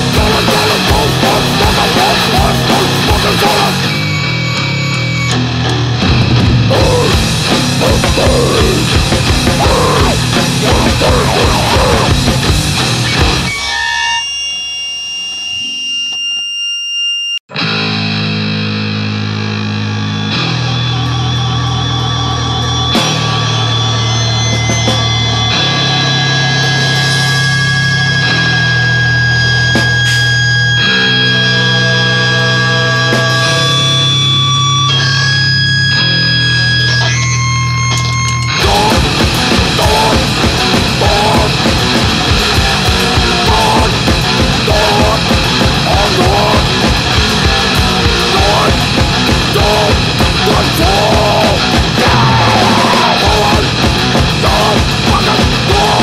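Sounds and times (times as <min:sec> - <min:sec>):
distorted guitar chords: 0:00.0 - 0:56.0
guitar feedback tones: 0:00.0 - 0:56.0
rock band playing: 0:00.0 - 0:56.0.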